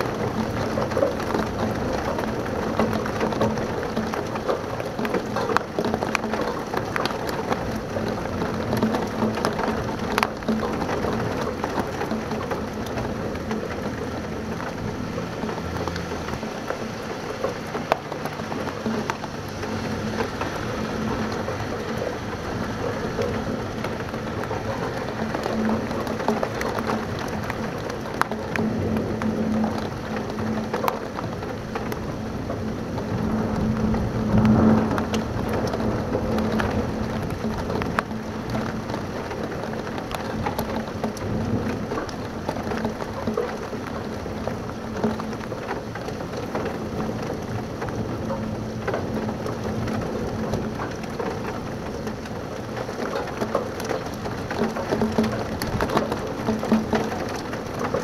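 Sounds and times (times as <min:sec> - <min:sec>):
heavy rain on window: 0:00.0 - 0:58.0
thunder rumbling: 0:00.0 - 0:58.0.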